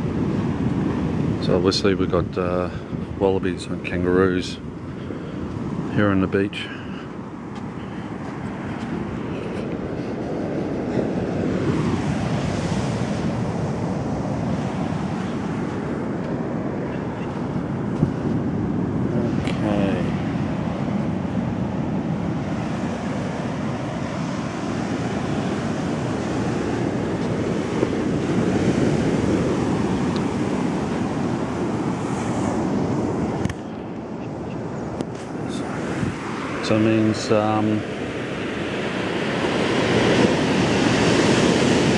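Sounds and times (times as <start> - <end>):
wind buffeting microphone: 0.0 - 41.9
surf breaking on beach: 35.0 - 41.9.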